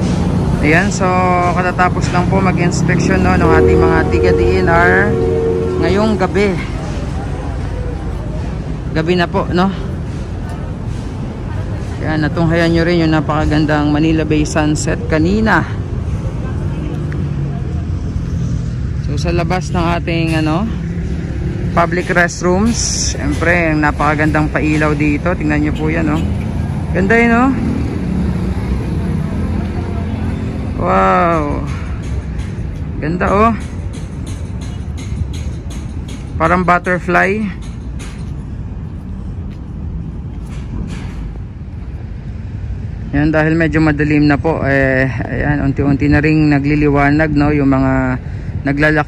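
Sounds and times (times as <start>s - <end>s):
road traffic rumble: 0.0s - 49.0s.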